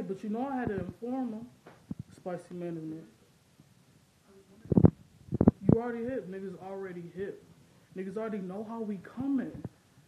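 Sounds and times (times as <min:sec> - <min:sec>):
person speaking: 0:00.0 - 0:03.2, 0:04.2 - 0:09.8
low thumps on microphone: 0:01.6 - 0:02.2, 0:04.6 - 0:05.9.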